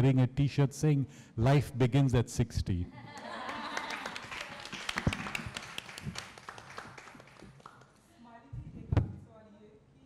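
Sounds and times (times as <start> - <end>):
audience applause: 3.3 - 7.8.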